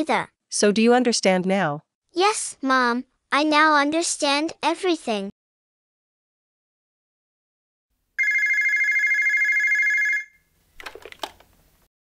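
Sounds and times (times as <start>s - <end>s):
warbling telephone ring: 8.2s - 10.4s.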